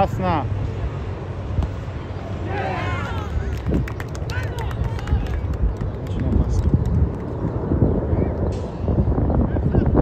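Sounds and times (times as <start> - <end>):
steady low rumble: 0.0 - 10.0
people shouting: 2.4 - 3.5.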